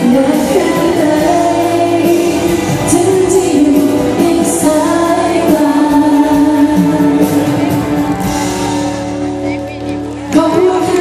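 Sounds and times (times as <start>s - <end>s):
woman singing: 0.0s - 8.0s, 10.3s - 11.0s
pop ballad band sustained chords: 0.0s - 11.0s.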